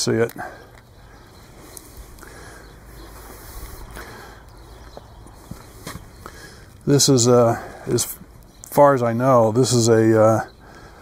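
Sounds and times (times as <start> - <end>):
footsteps on snowy asphalt: 1.2 - 6.6.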